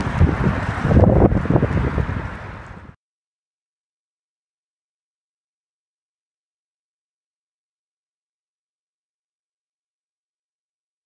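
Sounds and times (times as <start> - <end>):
wind buffeting microphone: 0.0 - 3.0.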